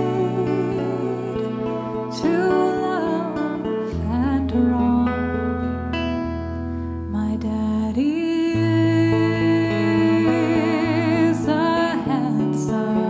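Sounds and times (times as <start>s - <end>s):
fiddle playing sliding melody: 0.0s - 4.9s
acoustic guitar accompaniment: 0.0s - 13.0s.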